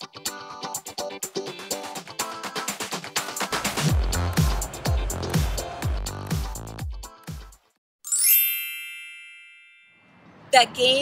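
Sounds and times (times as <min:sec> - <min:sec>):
sparkling chime: 0:08.1 - 0:10.1.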